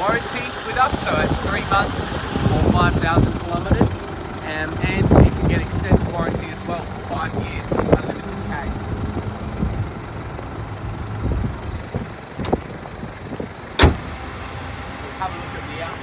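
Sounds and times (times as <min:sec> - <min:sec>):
car bonnet slamming shut: 0:13.7 - 0:14.2.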